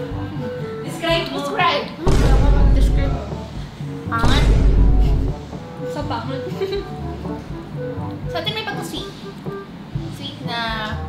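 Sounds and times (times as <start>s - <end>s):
background music: 0.0s - 11.0s
heavy low boom: 2.1s - 3.6s, 4.2s - 5.4s.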